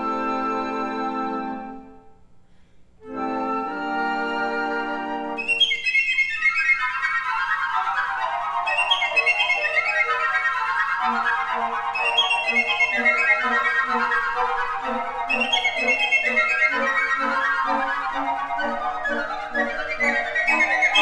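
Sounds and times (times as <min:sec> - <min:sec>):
flute ensemble playing fast figures: 0:00.0 - 0:01.8, 0:03.1 - 0:21.0.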